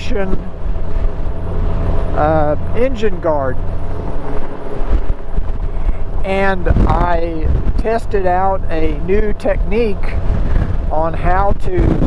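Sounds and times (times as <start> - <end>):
motorcycle engine: 0.0 - 7.8
road noise: 0.0 - 12.0
wind buffeting microphone: 0.2 - 12.0.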